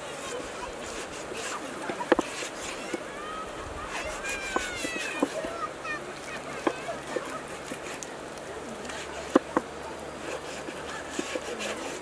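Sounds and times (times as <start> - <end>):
blade tapping wooden board: 1.8 - 3.0, 4.0 - 5.5, 6.6 - 8.1, 8.9 - 9.7, 10.3 - 12.0.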